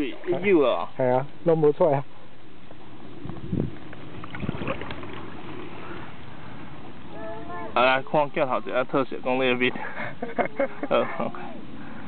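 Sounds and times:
steady background hiss: 0:00.0 - 0:12.0
scraping in mud: 0:03.3 - 0:06.2.

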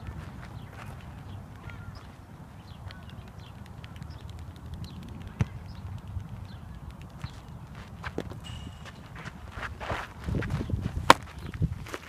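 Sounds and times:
footsteps on dirt: 0:00.0 - 0:03.5, 0:07.1 - 0:12.0
steady low rumble: 0:00.0 - 0:12.0
baseball smacking into glove: 0:10.4 - 0:11.3.

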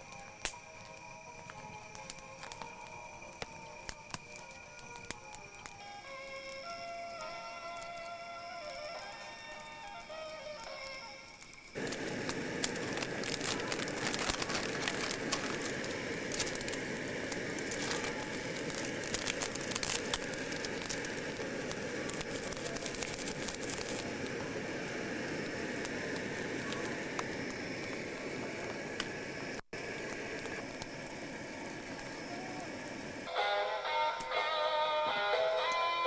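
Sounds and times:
gas stove crackles: 0:00.0 - 0:33.3
water boiling and bubbling: 0:00.0 - 0:33.3
guitar music: 0:33.3 - 0:36.0.

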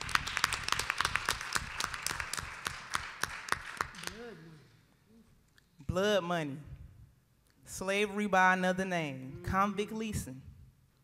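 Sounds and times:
audience applauding: 0:00.0 - 0:04.3.

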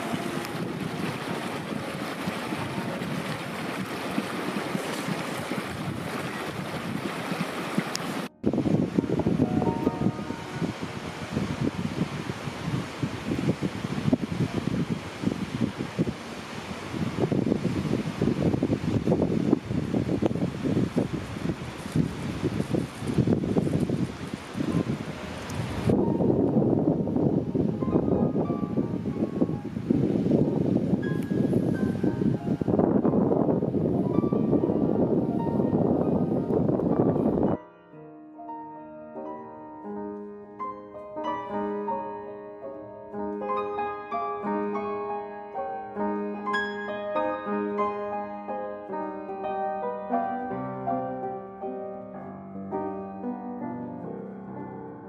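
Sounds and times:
wind buffeting microphone: 0:00.0 - 0:37.6
soft piano notes: 0:08.3 - 0:12.1, 0:23.5 - 0:55.0.

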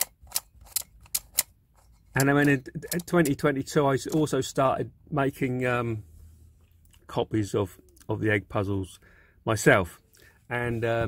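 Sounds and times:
plastic puzzle pieces clicking: 0:02.1 - 0:03.4.

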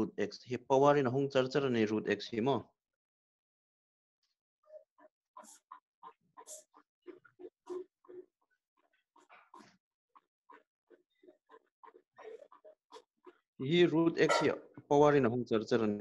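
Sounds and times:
marker squeaking on whiteboard: 0:04.7 - 0:13.4.

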